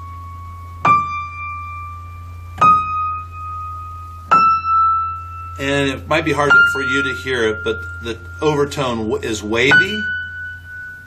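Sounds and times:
high piano notes ringing: 0.0 - 11.0.

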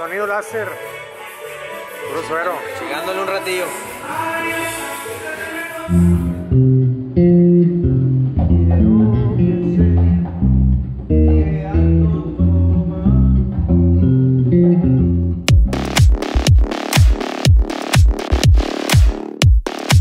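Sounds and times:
electric bass guitar notes: 5.9 - 19.4
sharp electronic hits: 15.5 - 20.0.

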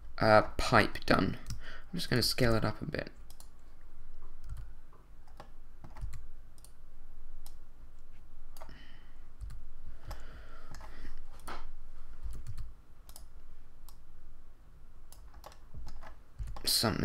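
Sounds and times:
computer keyboard and mouse clicking: 3.3 - 3.6, 4.4 - 6.8, 9.4 - 11.6, 12.2 - 14.0, 15.1 - 16.7.

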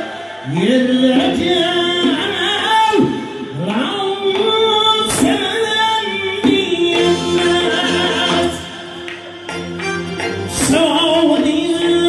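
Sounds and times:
man singing folk song: 0.0 - 8.9, 10.5 - 12.0
accordion: 6.4 - 12.0.

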